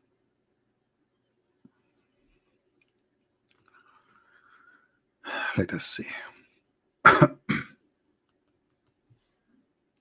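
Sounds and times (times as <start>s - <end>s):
man coughing: 7.0s - 7.8s.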